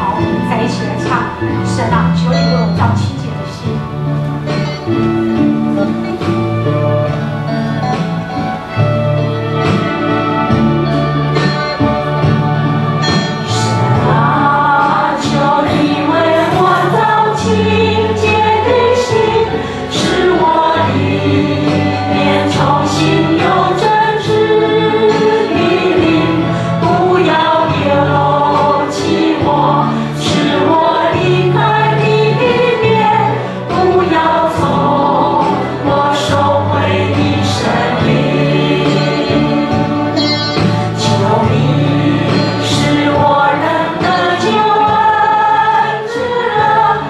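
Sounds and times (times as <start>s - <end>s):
held bass notes: 0.0s - 47.0s
voices singing together: 9.4s - 47.0s.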